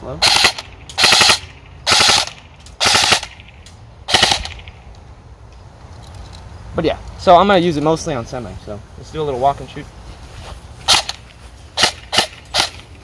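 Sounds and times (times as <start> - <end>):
airsoft gun full-auto bursts: 0.2 - 3.5, 4.1 - 4.7, 10.9 - 11.2, 11.8 - 13.0.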